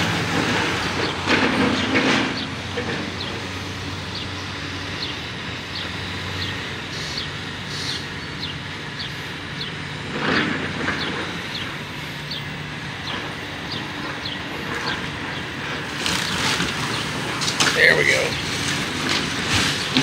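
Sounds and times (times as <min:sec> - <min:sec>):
excavator engine running: 0:00.0 - 0:20.0.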